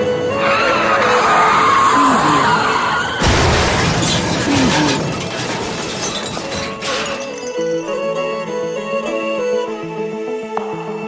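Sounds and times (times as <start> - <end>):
car crash: 2.8 - 8.0.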